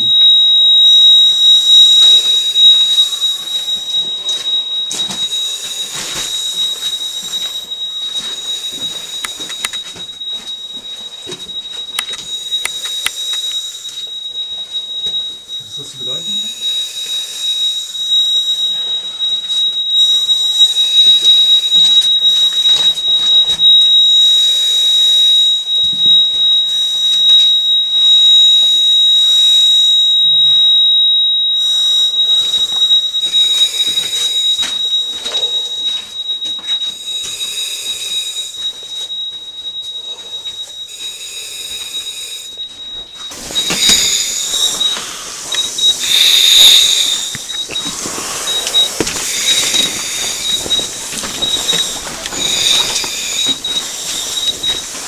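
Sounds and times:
high warning whistle: 0.0s - 55.0s
breath through regulator: 37.0s - 38.6s, 40.9s - 42.6s, 43.6s - 55.0s.

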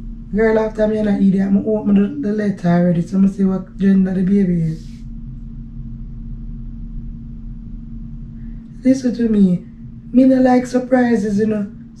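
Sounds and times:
low rumble: 0.0s - 12.0s
steady low hum: 0.0s - 12.0s.

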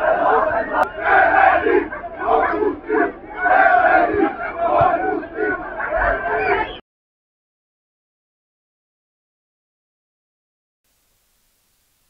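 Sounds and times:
football crowd chanting: 0.0s - 6.8s.

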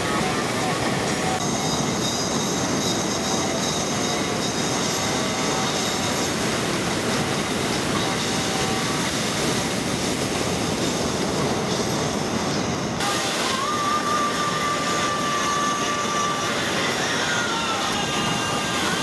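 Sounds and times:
ocean surf roaring: 0.0s - 19.0s.

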